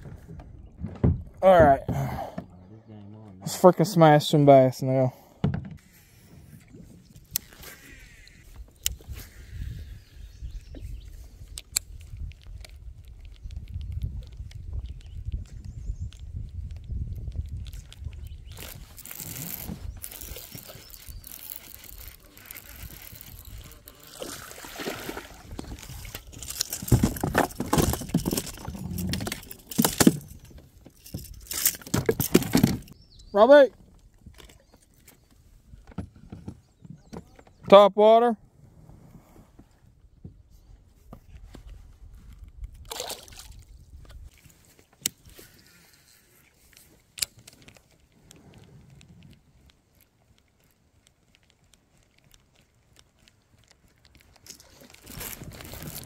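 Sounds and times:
gear rustling: 0:18.5 - 0:33.0, 0:44.4 - 0:56.0.

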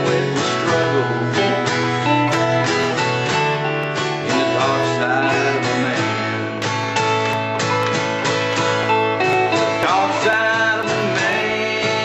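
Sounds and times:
acoustic guitar strumming: 0:00.0 - 0:12.0
electric guitar lead with slides: 0:00.0 - 0:12.0.

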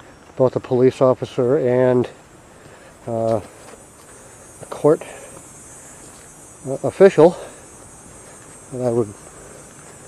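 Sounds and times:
insects droning: 0:00.0 - 0:10.0
man talking: 0:00.4 - 0:02.2, 0:03.0 - 0:03.5, 0:04.6 - 0:05.4, 0:06.6 - 0:07.6, 0:08.7 - 0:09.2.

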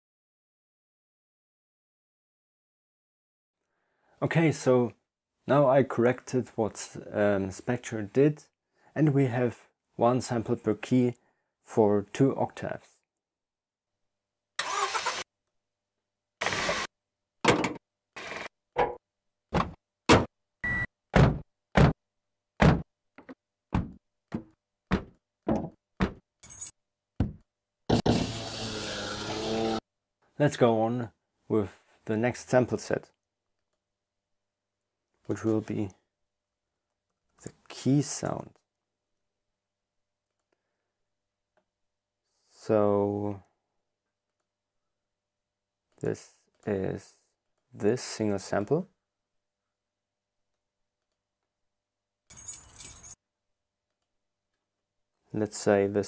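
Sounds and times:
short knocks and thunks: 0:18.8 - 0:20.3, 0:21.2 - 0:22.0, 0:22.6 - 0:26.2, 0:27.2 - 0:27.4
keys jangling: 0:26.4 - 0:26.7, 0:52.3 - 0:53.2.

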